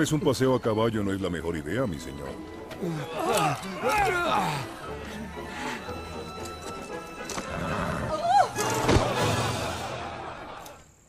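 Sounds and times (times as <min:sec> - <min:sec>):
background music: 0:00.0 - 0:11.0
horse whinnying: 0:07.3 - 0:08.9.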